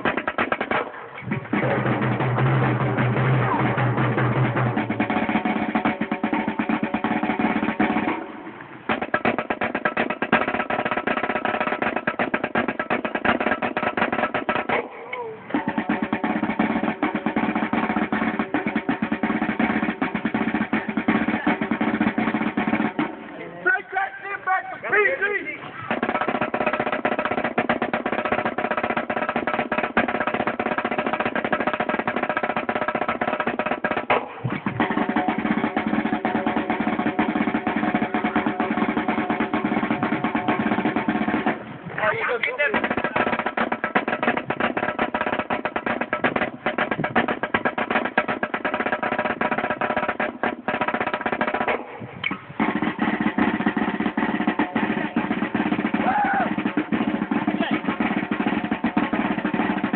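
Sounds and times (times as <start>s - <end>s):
marching snare drum rolls: 0.0s - 59.9s.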